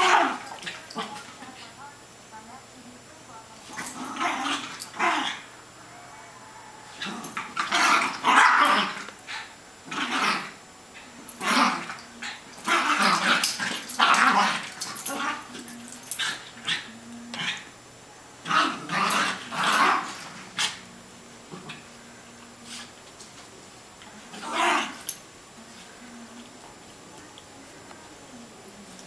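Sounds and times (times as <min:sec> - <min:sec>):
dogs growling and barking: 0:00.0 - 0:01.3, 0:03.7 - 0:17.7, 0:18.4 - 0:22.0, 0:24.2 - 0:25.2.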